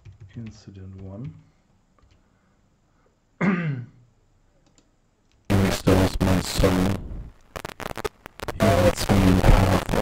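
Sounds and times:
man clearing throat: 0:03.4 - 0:04.0
loud noisy playback: 0:05.5 - 0:10.0.

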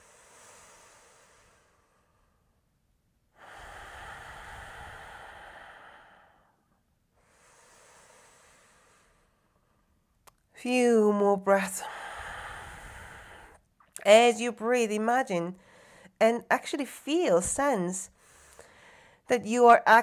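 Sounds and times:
person breathing deeply: 0:00.0 - 0:02.6, 0:03.3 - 0:10.0, 0:11.8 - 0:13.6, 0:15.6 - 0:16.2, 0:18.1 - 0:19.3.

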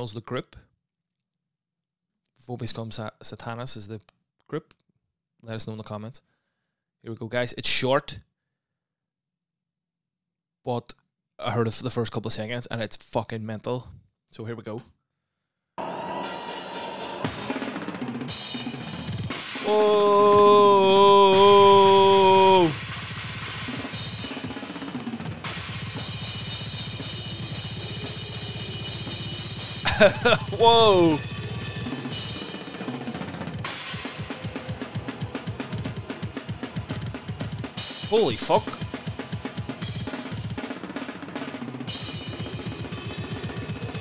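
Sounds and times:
fast metal drumming: 0:17.2 - 0:44.0
cymbal wash: 0:25.5 - 0:29.8.

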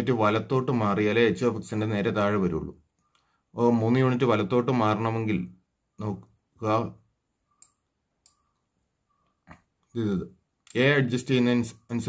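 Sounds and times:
computer mouse click: 0:07.5 - 0:09.6
person speaking: 0:09.5 - 0:12.0.

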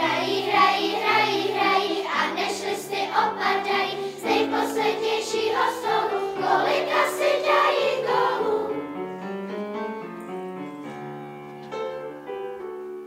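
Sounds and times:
children's choir singing: 0:00.0 - 0:09.1
piano accompaniment: 0:00.0 - 0:13.0.

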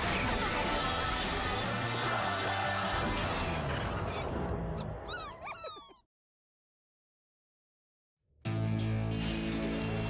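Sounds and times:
squeaky cartoon creature calls: 0:04.8 - 0:06.1.

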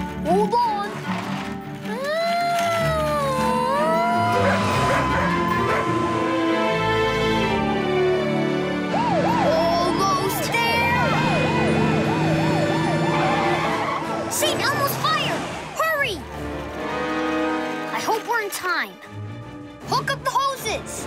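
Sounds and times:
background music: 0:00.0 - 0:21.0
fire engine siren wailing: 0:02.0 - 0:15.8.

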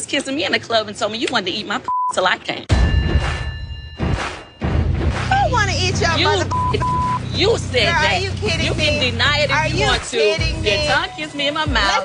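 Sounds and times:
censor bleep: 0:01.9 - 0:08.0
women arguing: 0:05.3 - 0:12.0.

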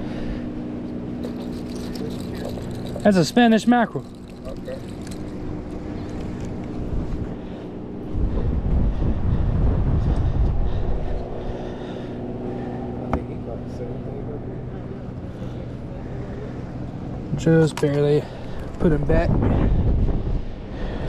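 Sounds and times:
steady low hum: 0:00.0 - 0:21.0
wind rumble on microphone: 0:04.7 - 0:11.8, 0:18.7 - 0:21.0.

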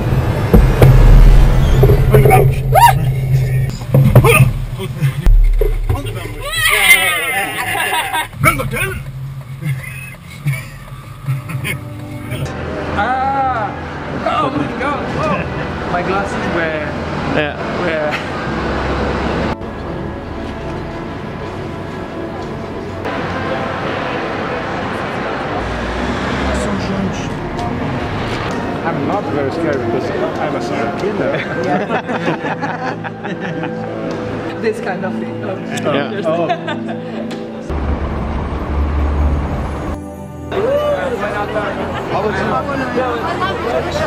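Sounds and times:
traffic rumble: 0:00.0 - 0:32.4, 0:37.6 - 0:44.0
low drone of scary music: 0:08.9 - 0:35.7.

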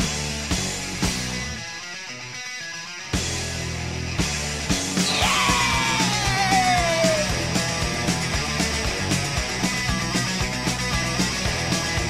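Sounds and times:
loud rock music: 0:00.0 - 0:12.0
person yelling: 0:05.1 - 0:07.5.

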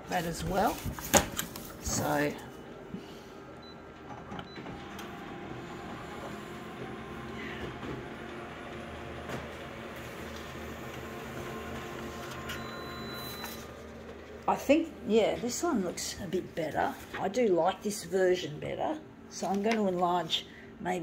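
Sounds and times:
copier mechanical hum: 0:00.0 - 0:21.0.

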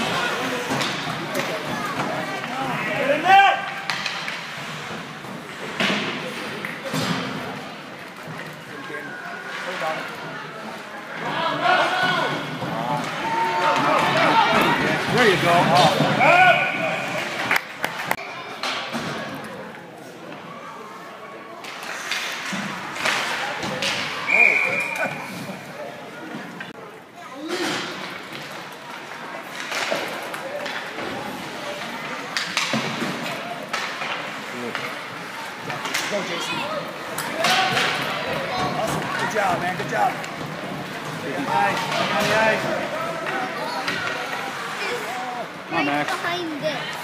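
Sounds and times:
spectators shouting: 0:16.1 - 0:17.4
referee whistle blasts: 0:24.3 - 0:25.2.

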